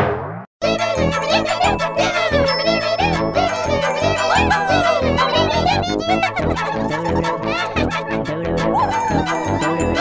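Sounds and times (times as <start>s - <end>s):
playful cartoon music: 0.6s - 10.0s.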